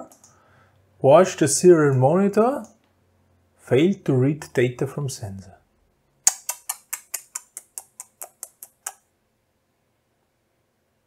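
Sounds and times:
rapid sharp clicks: 0:06.3 - 0:09.0.

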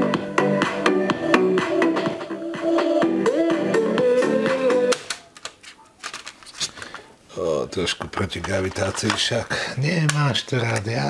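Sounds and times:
guitar music from cassette: 0:00.0 - 0:05.1.

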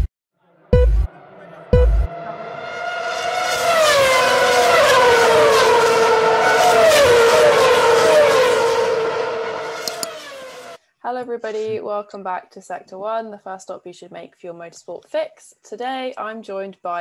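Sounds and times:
racing car engines passing: 0:00.4 - 0:10.8.

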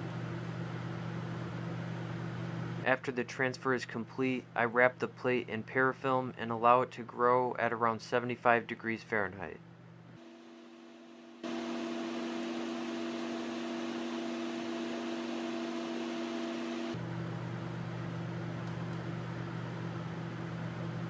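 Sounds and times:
blower rushing air with motor hum: 0:10.2 - 0:17.1.

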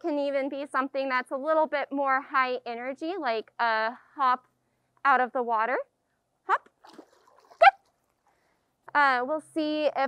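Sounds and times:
water splashing: 0:06.6 - 0:08.4.

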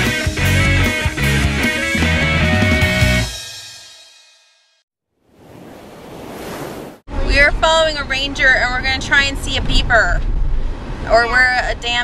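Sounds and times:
rock music with guitar: 0:00.0 - 0:03.6
woman speaking: 0:07.2 - 0:10.2, 0:11.1 - 0:12.0.

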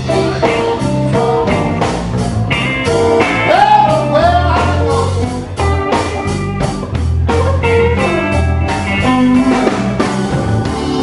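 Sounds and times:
bass guitar: 0:00.0 - 0:11.0
electric guitars: 0:00.0 - 0:11.0
steady drum beat: 0:00.0 - 0:11.0.

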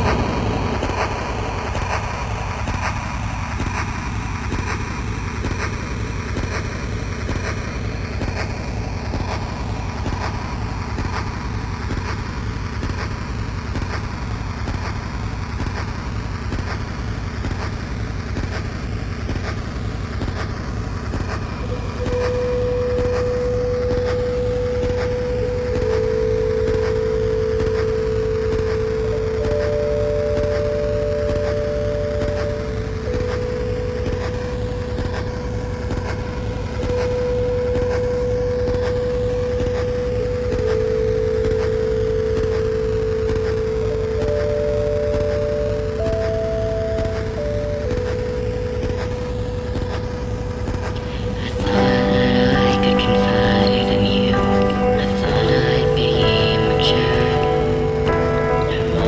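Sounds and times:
low rumbling drone: 0:00.0 - 0:16.5, 0:18.8 - 0:59.0
long held synth notes: 0:18.8 - 0:59.0.

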